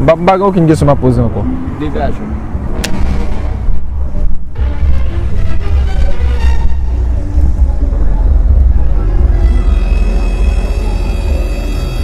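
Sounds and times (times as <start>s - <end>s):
low rumble: 2.1s - 12.0s
background music tones: 2.8s - 12.0s.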